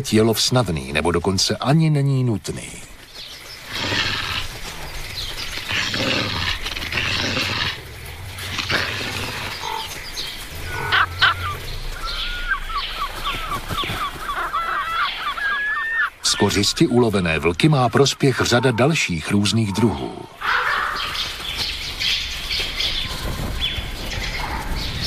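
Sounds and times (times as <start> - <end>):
wolves growling and snarling: 3.5 - 13.9.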